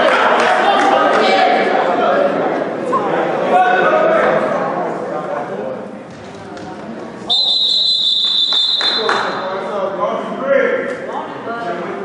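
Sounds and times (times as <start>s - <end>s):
referee's whistle blast: 7.3s - 9.5s.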